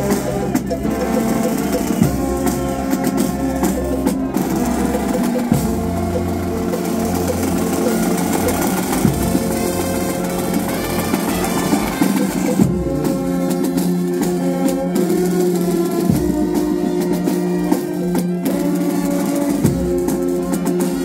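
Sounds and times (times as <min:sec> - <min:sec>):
drum beats: 0:00.0 - 0:21.0
marching brass band playing: 0:00.0 - 0:21.0
tuba bass line: 0:00.0 - 0:21.0.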